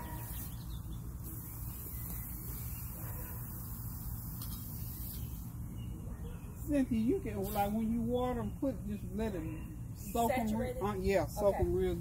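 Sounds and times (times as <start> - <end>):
low outdoor hum: 0.0 - 12.0.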